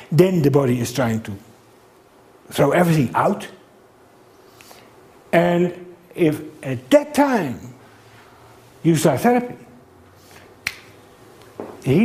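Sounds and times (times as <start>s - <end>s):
man talking: 0.0s - 1.4s, 2.5s - 3.6s, 5.3s - 7.8s, 8.8s - 9.8s, 11.8s - 12.0s.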